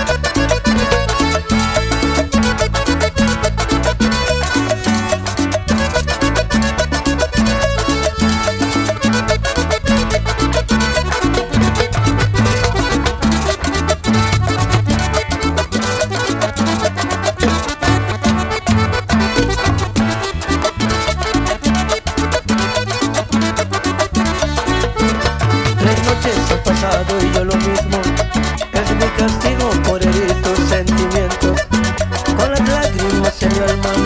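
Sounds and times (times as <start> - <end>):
accordion: 0.0 - 34.0
band playing dance music: 0.0 - 34.0.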